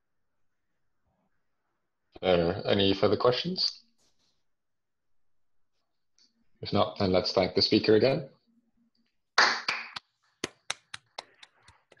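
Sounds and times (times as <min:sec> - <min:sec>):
hands clapping in applause: 0:09.4 - 0:12.0.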